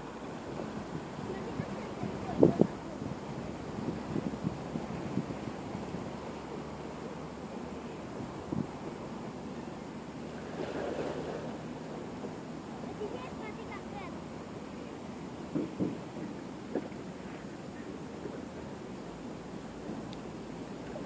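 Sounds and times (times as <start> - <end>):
steady outdoor hiss: 0.0 - 21.0
wind buffeting microphone: 0.4 - 6.3, 8.1 - 9.0.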